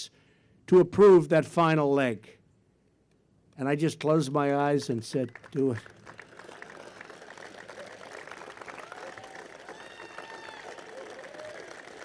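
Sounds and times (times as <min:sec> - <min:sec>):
audience applauding: 0:05.0 - 0:12.0.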